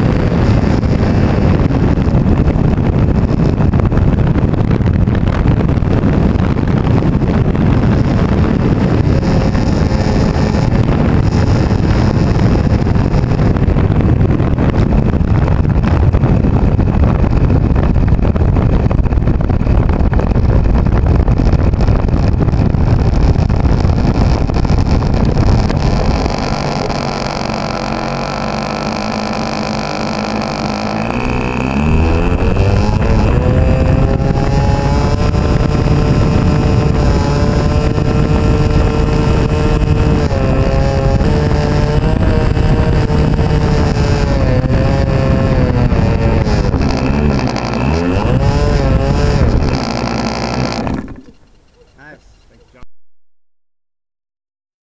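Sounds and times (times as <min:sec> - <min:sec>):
heavy rumble over grass: 0:00.0 - 0:52.7
model plane engine revving: 0:09.0 - 0:13.6, 0:21.6 - 0:52.1.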